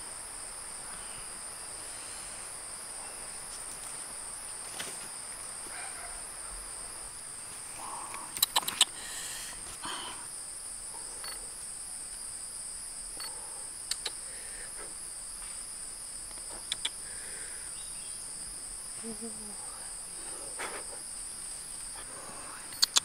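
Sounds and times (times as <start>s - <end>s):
shrill insect chorus: 0.0s - 23.0s
sharp clicks: 8.1s - 8.9s, 13.2s - 14.2s, 16.3s - 17.0s, 22.7s - 23.0s.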